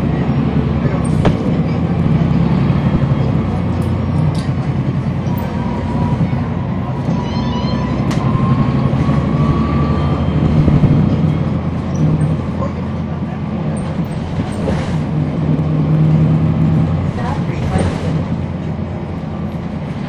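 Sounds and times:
bus diesel engine drone: 0.0s - 20.0s.

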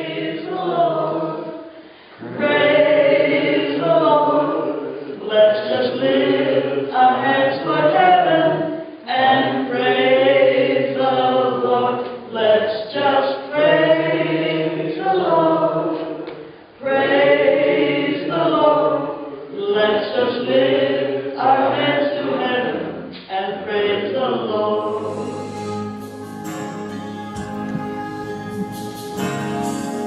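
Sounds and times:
woman singing a hymn: 24.2s - 30.0s.

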